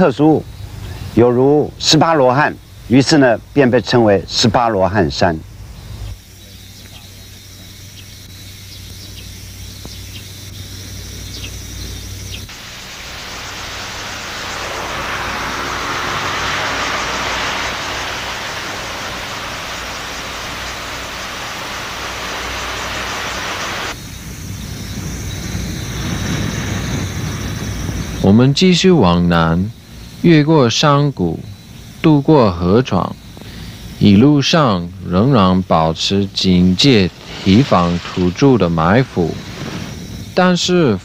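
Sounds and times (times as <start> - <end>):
low hum: 10.5 - 24.0
wind and road noise from car: 12.5 - 28.3, 37.1 - 40.4.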